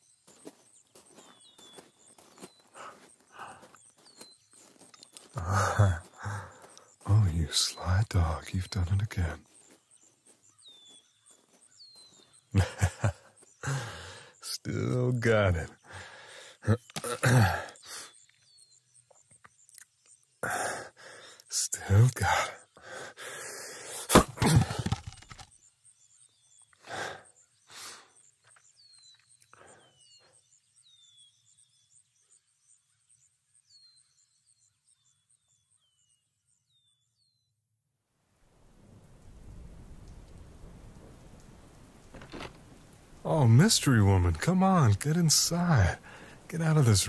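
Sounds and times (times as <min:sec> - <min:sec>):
birds chirping: 0:00.0 - 0:37.5, 0:39.3 - 0:47.0
man laughing and sighing: 0:02.7 - 0:03.8, 0:05.3 - 0:07.9, 0:12.5 - 0:18.2, 0:20.4 - 0:25.4, 0:26.8 - 0:28.2, 0:29.5 - 0:30.0, 0:44.8 - 0:47.0
rain hiss: 0:05.2 - 0:09.3, 0:12.2 - 0:18.3, 0:38.3 - 0:47.0.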